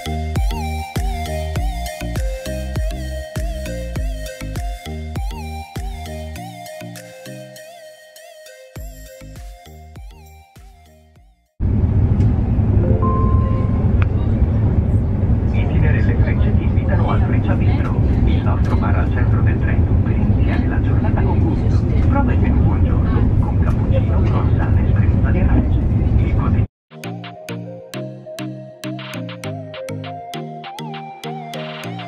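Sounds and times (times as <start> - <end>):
train rumbling inside carriage: 11.6 - 26.6
short beep: 12.8 - 14.0
passengers talking: 13.2 - 26.6.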